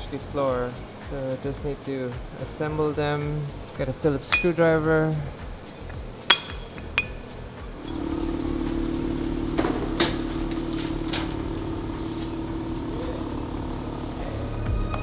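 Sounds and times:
tow truck mechanical hum: 5.2s - 15.0s.

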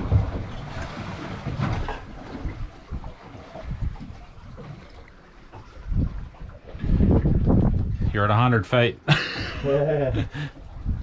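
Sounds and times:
wind buffeting microphone: 0.0s - 4.7s, 5.5s - 8.6s, 9.5s - 11.0s
water washing against boat hull: 0.0s - 8.4s.

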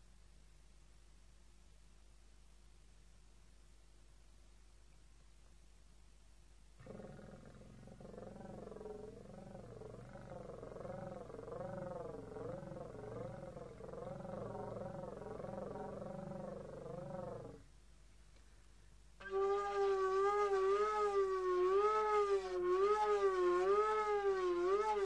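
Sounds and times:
slide flute wavering tone: 19.2s - 25.0s.

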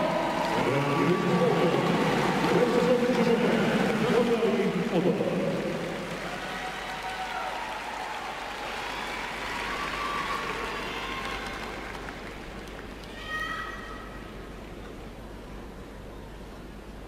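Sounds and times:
crowd cheering and applauding: 0.0s - 13.2s
high-pitched shouts: 13.1s - 14.1s.

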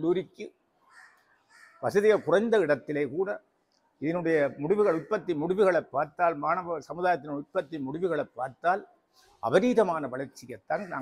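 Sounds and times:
man speaking: 0.0s - 0.6s, 1.8s - 11.0s
crow cawing faintly: 0.8s - 2.7s, 4.4s - 5.6s.

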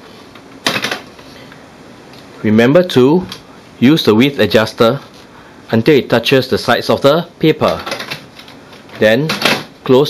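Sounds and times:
paper clattering into printer tray: 0.6s - 1.1s, 9.3s - 9.7s.

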